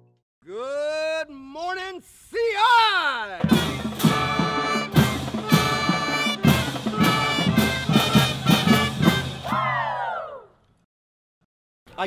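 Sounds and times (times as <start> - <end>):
man shouting: 0.4 - 3.7
drum hits: 3.4 - 9.5
brass band playing up-tempo tune: 3.4 - 9.7.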